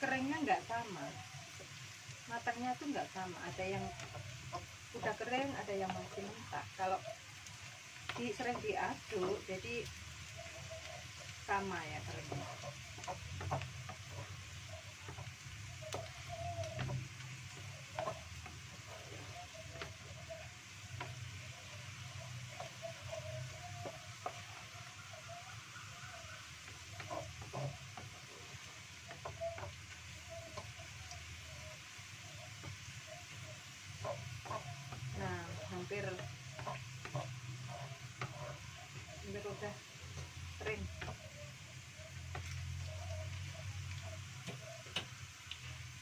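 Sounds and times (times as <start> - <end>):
shallots sizzling in oil: 0.0 - 46.0
wooden spatula scraping a wok: 0.0 - 46.0.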